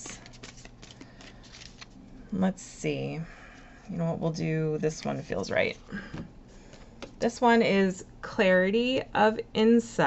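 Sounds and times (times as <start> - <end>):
cards being shuffled: 0.0 - 2.0.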